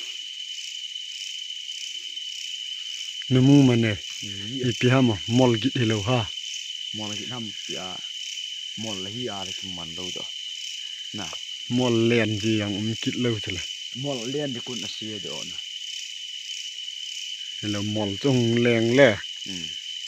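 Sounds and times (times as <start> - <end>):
crickets chirping: 0.0 - 20.0
man talking: 3.3 - 6.3, 7.0 - 8.0, 8.8 - 10.2, 11.2 - 15.6, 17.6 - 19.7.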